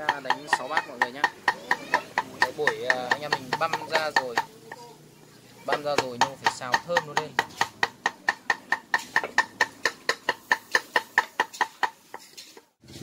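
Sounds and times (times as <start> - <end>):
cleaver chopping on wooden board: 0.0 - 4.8, 5.7 - 12.2.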